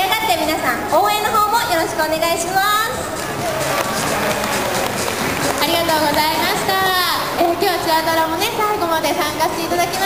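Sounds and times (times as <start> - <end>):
audience applauding: 3.0 - 7.9.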